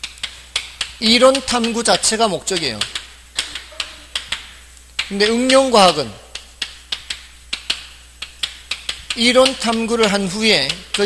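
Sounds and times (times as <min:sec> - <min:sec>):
chalk tapping on blackboard: 0:00.0 - 0:11.0.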